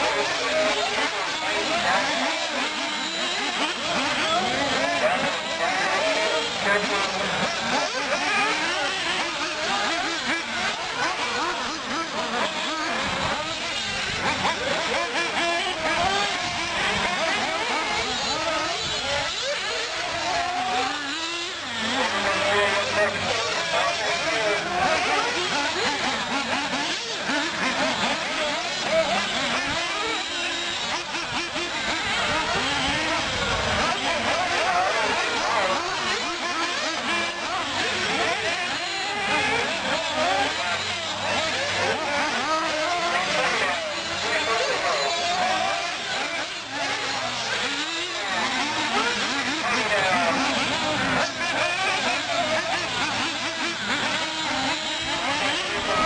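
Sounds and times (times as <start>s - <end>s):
small engines whining: 0.0s - 56.0s.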